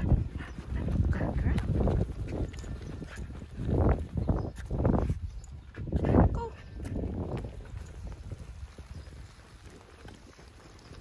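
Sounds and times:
footsteps on concrete: 0.0s - 11.0s.

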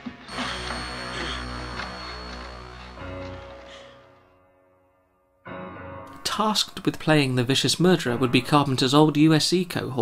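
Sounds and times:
thin high whine: 0.1s - 4.2s
low music drone: 0.1s - 4.7s.

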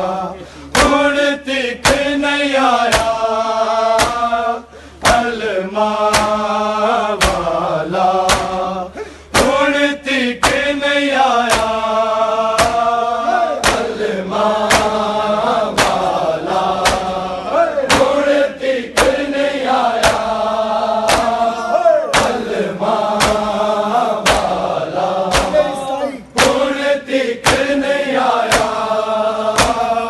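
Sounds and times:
men chanting in unison: 0.0s - 30.0s
hands slapping bare chests: 0.7s - 1.1s, 1.8s - 2.1s, 2.8s - 3.2s, 3.9s - 4.3s, 5.0s - 5.4s, 6.0s - 6.5s, 7.2s - 7.6s, 8.2s - 8.6s, 9.3s - 9.6s, 10.4s - 10.7s, 11.4s - 11.9s, 12.6s - 13.0s, 13.6s - 14.0s, 14.6s - 15.1s, 15.7s - 17.2s, 17.9s - 19.3s, 20.0s - 20.4s, 21.0s - 21.5s, 22.1s - 22.5s, 23.2s - 23.6s, 24.2s - 25.7s, 26.4s - 26.8s, 27.4s - 27.8s, 28.4s - 28.8s, 29.5s - 29.9s.

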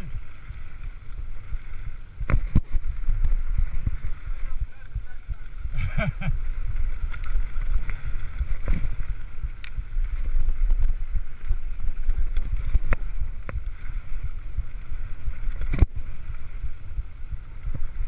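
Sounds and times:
bike knocking and rattling: 0.0s - 18.0s
wind rumble on microphone: 0.0s - 18.0s.

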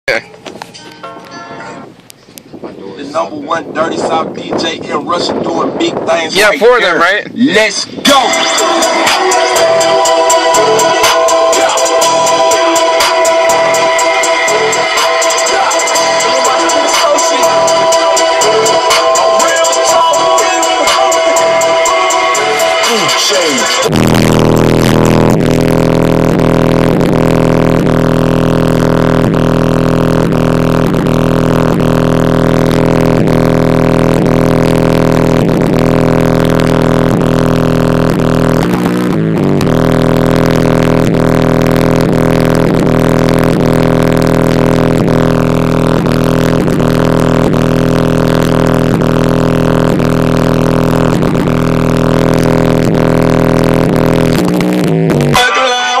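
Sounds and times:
loud music on car stereo: 0.1s - 56.0s.

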